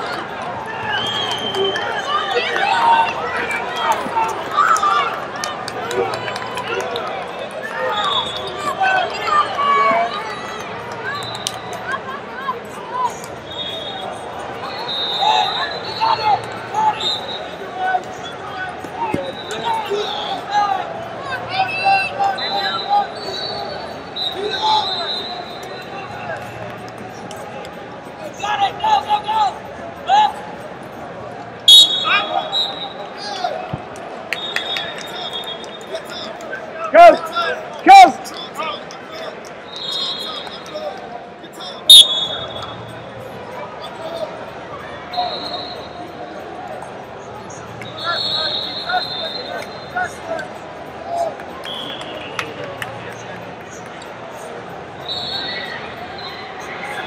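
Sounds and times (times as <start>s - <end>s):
arena crowd hubbub: 0.0s - 57.0s
murmur of voices in a hall: 0.0s - 57.0s
referee's whistle: 0.9s - 2.2s, 7.9s - 8.7s, 11.1s - 11.8s, 13.4s - 17.6s, 19.0s - 20.5s, 21.6s - 26.0s, 31.7s - 33.1s, 34.3s - 36.1s, 39.7s - 40.7s, 41.9s - 42.9s, 45.1s - 46.1s, 47.6s - 50.2s, 51.6s - 52.6s, 55.0s - 57.0s
loud shout: 36.8s - 38.3s.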